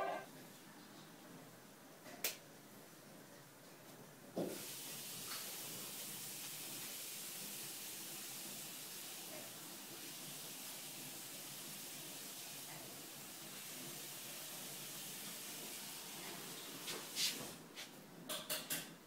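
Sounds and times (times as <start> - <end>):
faint room tone hiss: 0.0 - 19.0.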